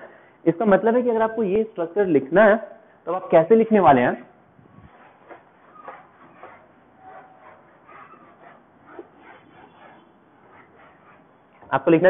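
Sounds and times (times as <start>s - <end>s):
marker squeaks: 4.6s - 11.7s
marker scratching on whiteboard: 4.6s - 11.8s.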